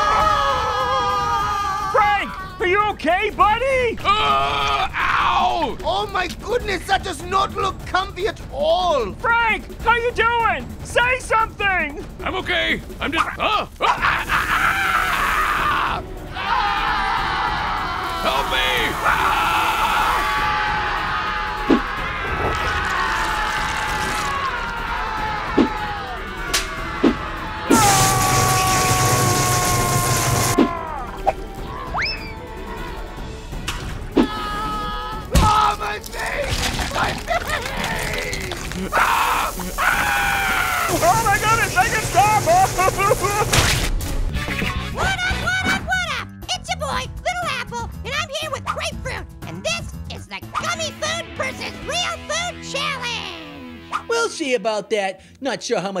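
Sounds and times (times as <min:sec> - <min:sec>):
long raspy scream of pain: 0:00.0 - 0:02.0, 0:13.8 - 0:31.2, 0:37.9 - 0:41.6
cartoon voice screaming in pain: 0:38.8 - 0:41.4.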